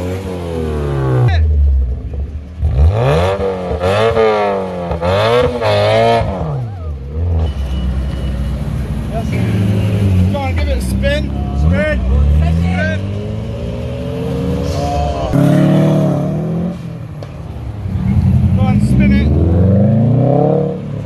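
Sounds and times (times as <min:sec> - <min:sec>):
engines idling: 0:00.0 - 0:20.1
car engine revving: 0:00.0 - 0:21.0.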